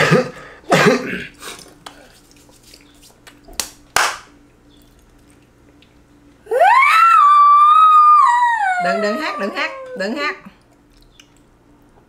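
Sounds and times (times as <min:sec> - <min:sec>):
hand claps: 0:03.2 - 0:04.3
drawn-out high vocal exclamation: 0:06.5 - 0:10.5.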